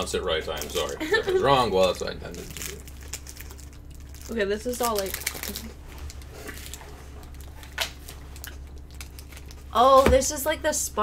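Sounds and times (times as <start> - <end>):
low steady hum: 0.0 - 11.0
plastic wrapper rustling: 1.8 - 10.0.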